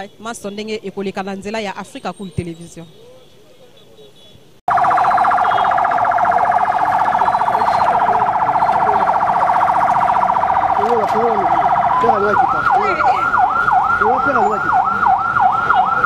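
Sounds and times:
electronic siren warbling: 0:04.7 - 0:16.0.

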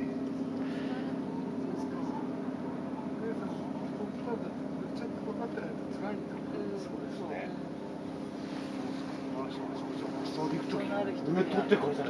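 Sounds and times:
faint voices: 0:00.0 - 0:12.0
low motor drone: 0:00.0 - 0:12.0.

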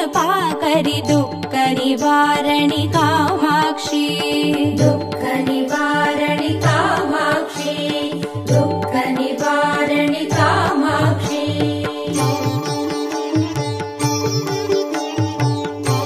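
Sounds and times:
devotional song melody: 0:00.0 - 0:16.0.

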